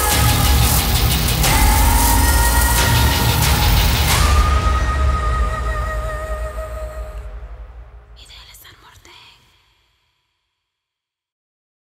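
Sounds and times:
trailer music: 0:00.0 - 0:08.4
breathy whisper: 0:08.1 - 0:10.1.

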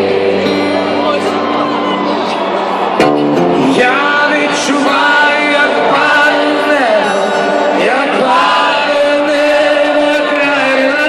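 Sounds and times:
man singing over guitar: 0:00.0 - 0:01.8, 0:03.5 - 0:11.0.

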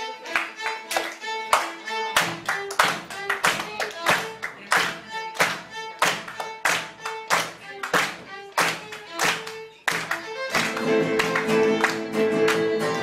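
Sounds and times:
band playing folk music: 0:00.0 - 0:13.0
solo violin melody: 0:00.0 - 0:13.0
steady handclaps: 0:00.2 - 0:13.0
guitars: 0:02.1 - 0:13.0.

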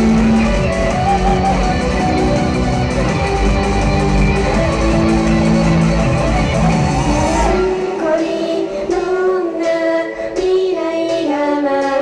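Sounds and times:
heavy bass: 0:00.0 - 0:07.5
guitar band backing track: 0:00.0 - 0:07.9
woman singing into microphone: 0:07.5 - 0:12.0.

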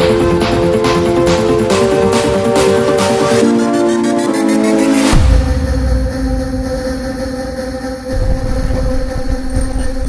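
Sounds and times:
wind rumbling on microphone: 0:08.1 - 0:10.0.

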